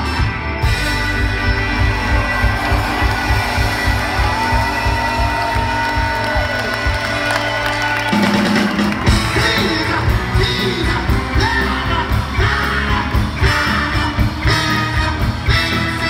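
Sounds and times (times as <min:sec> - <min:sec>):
live soul band playing: 0:00.0 - 0:16.0.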